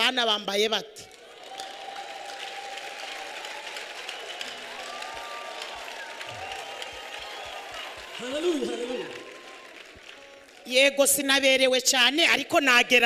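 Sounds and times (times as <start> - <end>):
audience applauding: 1.1 - 11.0.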